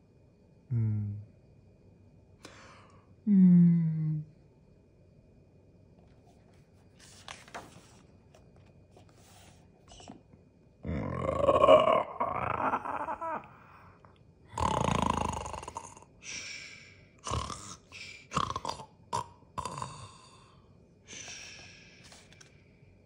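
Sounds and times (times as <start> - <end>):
man imitating snoring: 10.8 - 13.8, 14.5 - 16.5, 17.2 - 21.4.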